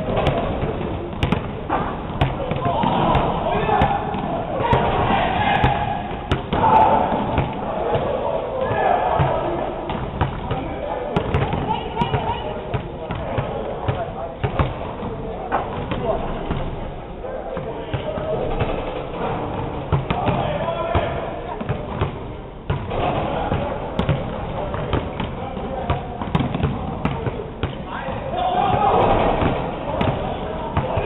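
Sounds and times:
basketballs bouncing on court: 0.0 - 16.9, 17.5 - 31.0.

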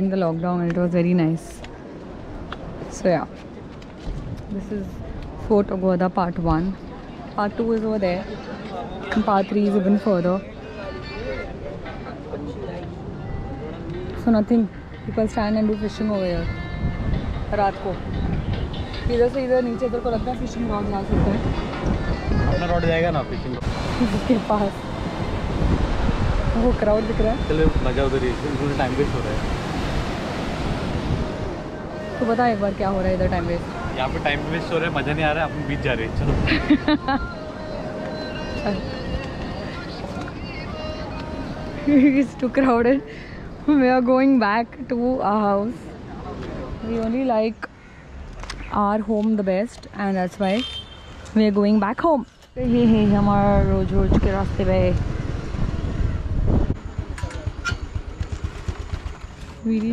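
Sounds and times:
wind rumbling on microphone: 1.0 - 8.6, 12.9 - 37.1, 52.5 - 59.9
sea waves breaking: 23.5 - 43.5.

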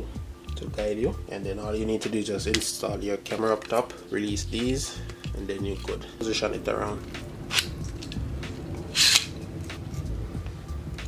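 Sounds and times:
camera rig handling noise: 7.0 - 10.0.

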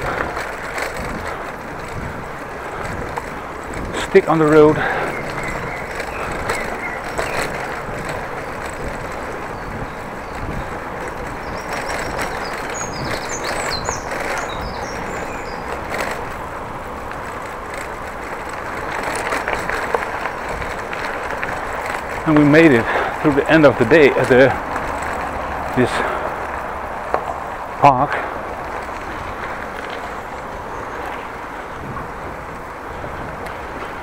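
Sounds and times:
wind on microphone: 0.0 - 4.1, 4.7 - 22.2, 28.4 - 34.0
bicycle knocking over bumps: 0.0 - 34.0
bicycle tyres on dirt path: 0.0 - 34.0
bird chirping: 4.6 - 7.8, 9.4 - 16.0.

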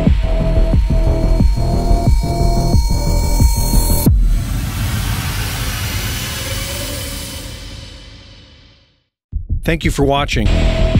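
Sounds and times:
electronic logo rumble: 0.0 - 8.8.

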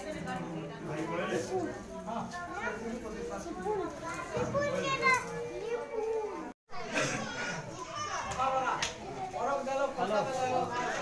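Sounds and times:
children chattering and calling out: 0.0 - 11.0.

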